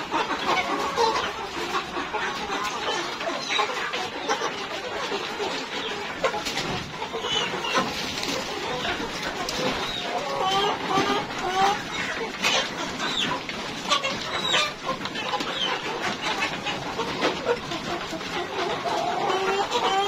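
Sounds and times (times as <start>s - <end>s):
chickens clucking: 0.0s - 20.0s.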